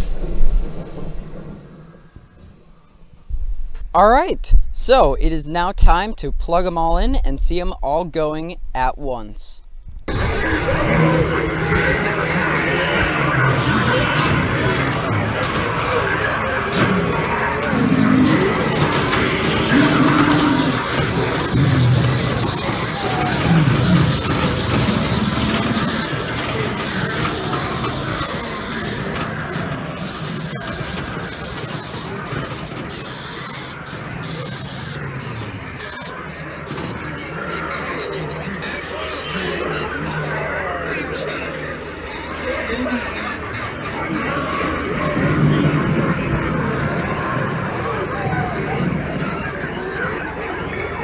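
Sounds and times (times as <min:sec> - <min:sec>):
animatronic voices and effects jumble: 0:04.0 - 0:51.0.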